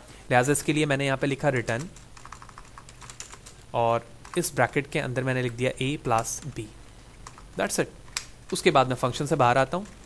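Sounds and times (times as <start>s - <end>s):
computer keyboard typing: 1.5s - 3.6s, 4.2s - 4.6s, 7.2s - 7.5s, 8.1s - 8.8s.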